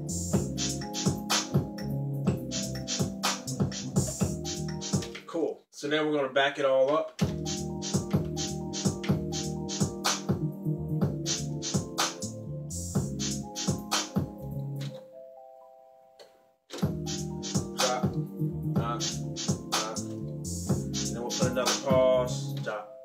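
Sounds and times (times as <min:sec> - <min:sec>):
drum machine hits: 0:00.4 - 0:05.2, 0:07.2 - 0:10.4, 0:13.0 - 0:14.4, 0:16.7 - 0:18.2, 0:18.8 - 0:20.0
synth bass line: 0:16.8 - 0:21.2.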